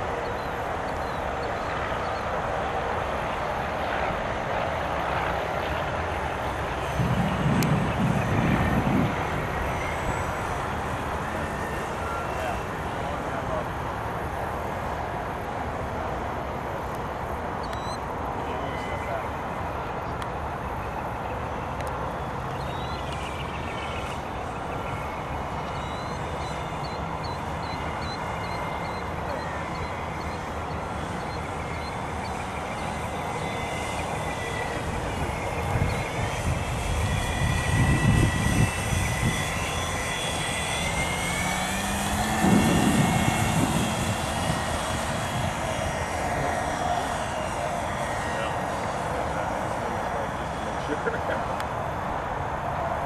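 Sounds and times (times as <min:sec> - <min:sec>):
model aircraft engine buzzing: 0:00.0 - 0:53.0
loud low rumbles: 0:41.5 - 0:46.6.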